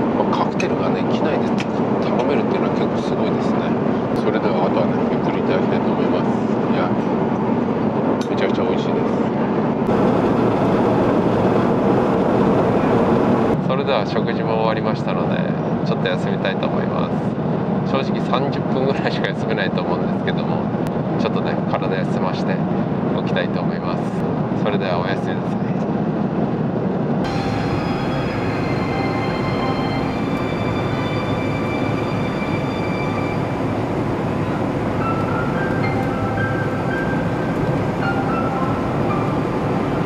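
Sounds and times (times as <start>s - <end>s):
airliner cabin rumble: 0.0s - 13.6s, 25.2s - 40.0s
faint high tones: 27.3s - 40.0s.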